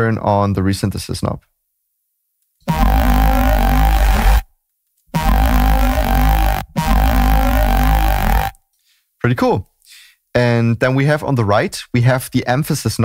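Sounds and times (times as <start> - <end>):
buzzy synthesized bass notes: 2.7 - 4.4, 5.1 - 8.6.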